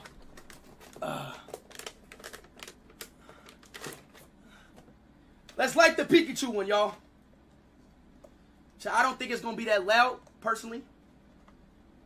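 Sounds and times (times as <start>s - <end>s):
package crinkling and clicking: 0.0s - 4.3s.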